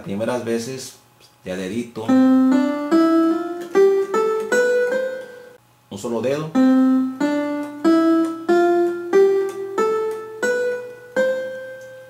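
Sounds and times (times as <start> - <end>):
electronic keyboard ascending scale: 2.1 - 5.6, 6.6 - 12.0.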